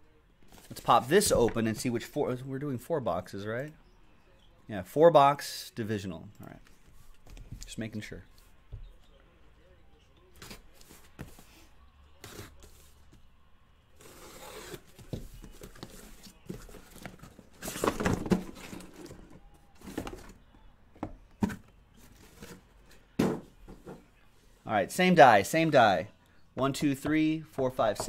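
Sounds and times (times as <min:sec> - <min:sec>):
boxes knocking down: 0:17.6 - 0:19.3.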